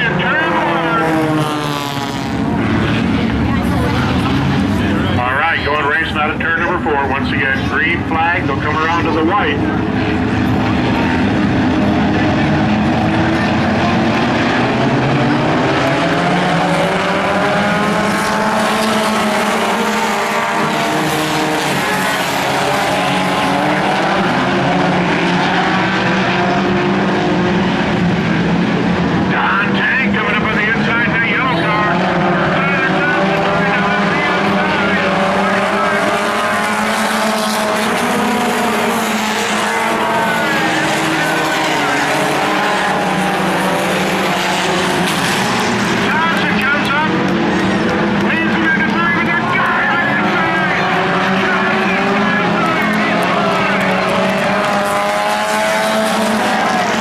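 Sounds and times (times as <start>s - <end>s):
race car engines: 0.0s - 57.0s.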